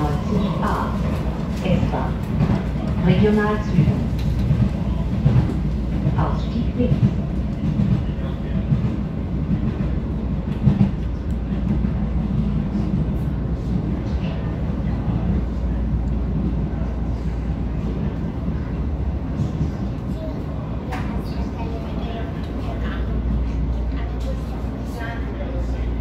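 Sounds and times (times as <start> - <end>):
metro car rumbling on track: 0.0 - 26.0.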